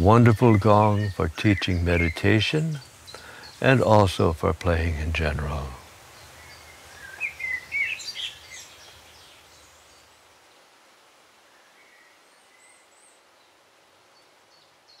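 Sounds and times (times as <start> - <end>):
faint outdoor background noise: 0.0 - 15.0
songbirds chirping: 0.0 - 15.0.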